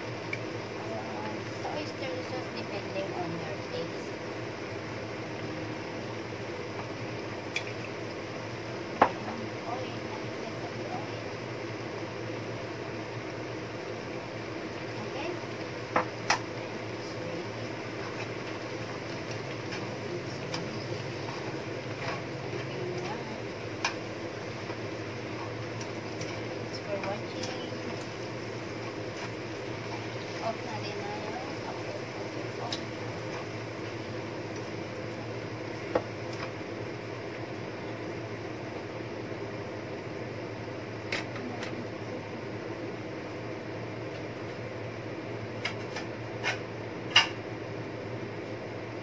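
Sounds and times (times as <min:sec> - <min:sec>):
lettuce sizzling in a frying pan: 0:00.0 - 0:42.0
low steady hum: 0:00.0 - 0:49.0.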